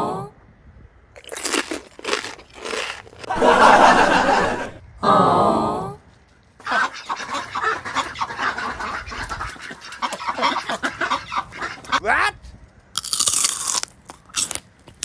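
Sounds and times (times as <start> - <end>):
duck calls: 6.7 - 12.0.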